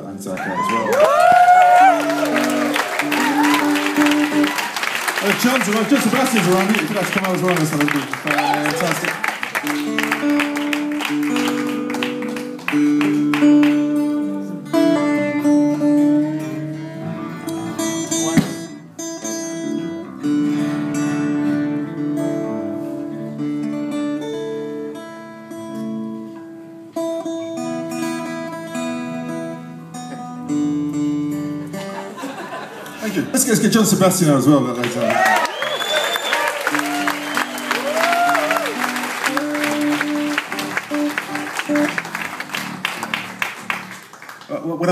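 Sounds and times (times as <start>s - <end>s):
acoustic guitars picked: 0.0s - 35.1s, 36.0s - 44.9s.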